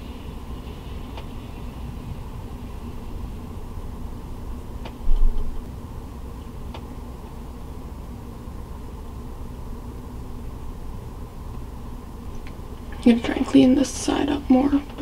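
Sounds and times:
low rumbling hum: 0:00.0 - 0:15.0.

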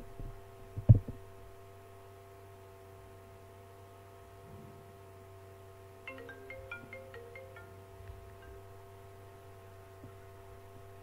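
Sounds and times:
electrical hum: 0:00.0 - 0:11.0
faint steady tones: 0:03.1 - 0:11.0.

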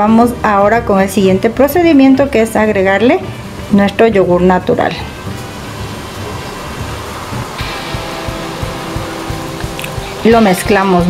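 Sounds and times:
background music with low beat: 0:04.9 - 0:11.0
bright hiss: 0:05.1 - 0:11.0.

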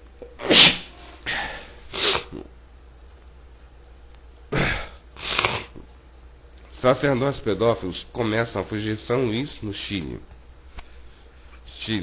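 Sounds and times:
person sneezing: 0:00.3 - 0:02.5, 0:04.5 - 0:05.9
noisy breaths: 0:10.6 - 0:11.8.

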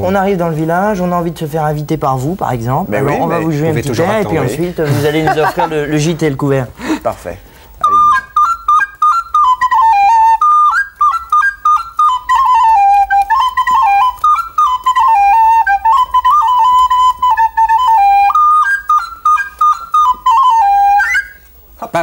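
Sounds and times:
recorder playing lively tune: 0:02.9 - 0:05.5, 0:07.8 - 0:21.6.

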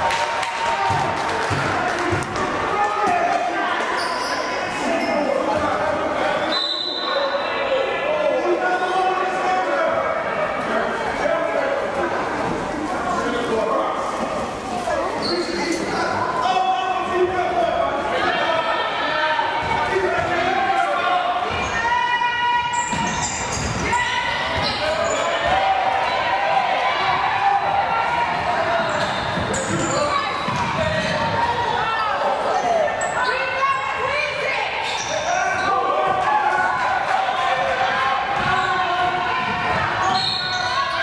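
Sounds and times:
echoing indistinct shouts: 0:00.0 - 0:11.8, 0:15.8 - 0:41.0.

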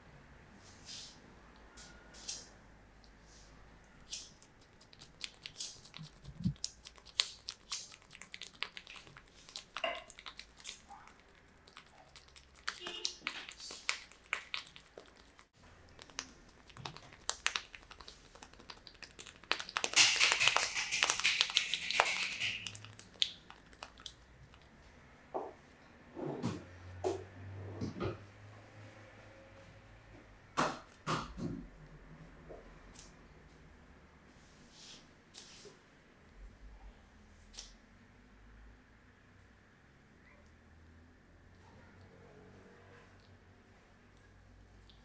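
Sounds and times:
hands rubbing hair and skin: 0:16.3 - 0:22.9.

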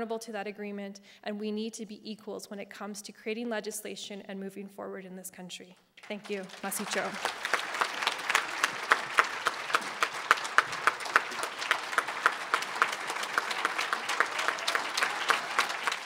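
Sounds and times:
audience applauding: 0:06.0 - 0:16.0.

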